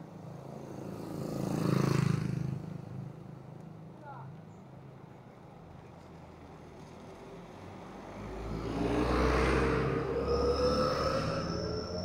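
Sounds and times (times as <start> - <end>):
motor vehicle passing by: 0.6 - 3.2, 6.5 - 12.0.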